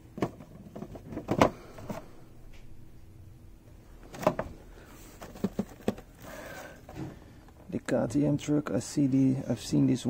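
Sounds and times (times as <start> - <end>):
plastic boxes clicking and knocking: 0.0 - 2.1, 4.1 - 7.6.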